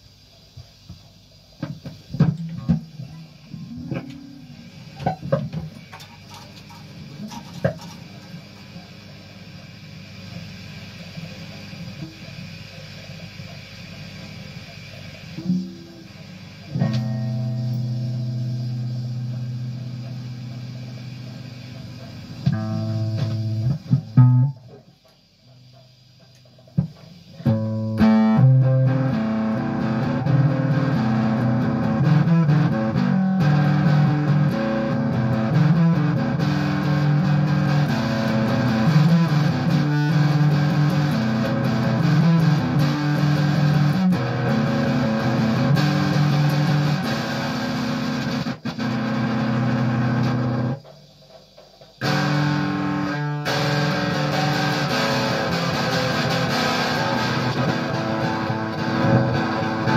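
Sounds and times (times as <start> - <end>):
electric guitar jamming: 16.7 - 24.8, 26.8 - 59.9.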